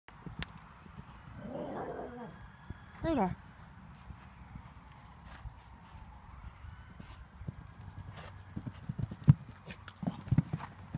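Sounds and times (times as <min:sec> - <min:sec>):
horse hoofbeats on sand: 0:02.9 - 0:10.9.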